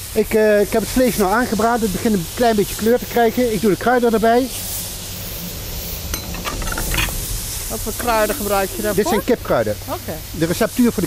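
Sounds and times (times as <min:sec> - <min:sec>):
chicken sizzling in a wok: 0:00.0 - 0:11.0.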